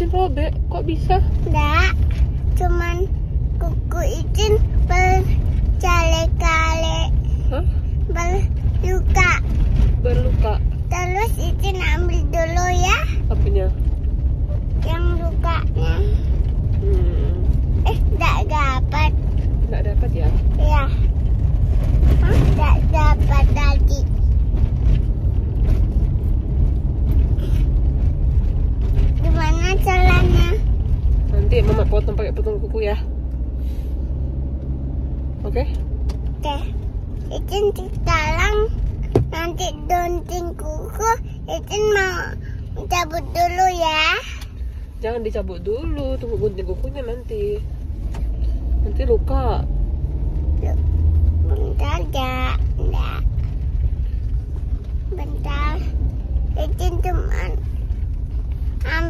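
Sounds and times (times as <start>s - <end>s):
car road and engine noise: 0.0s - 59.0s
child's voice: 1.3s - 13.6s, 14.5s - 21.2s, 22.0s - 24.4s, 28.9s - 33.0s, 36.3s - 44.6s, 50.4s - 53.6s, 55.0s - 58.0s, 58.7s - 59.0s.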